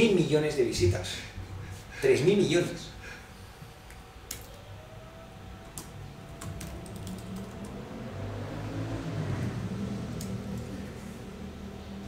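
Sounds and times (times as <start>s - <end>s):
low hum: 0.0s - 12.0s
laptop keyboard keystrokes: 4.3s - 4.6s, 5.6s - 7.7s.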